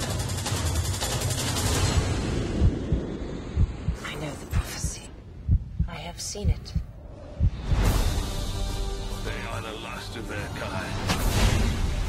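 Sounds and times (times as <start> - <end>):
deep low booms: 2.1 - 8.4.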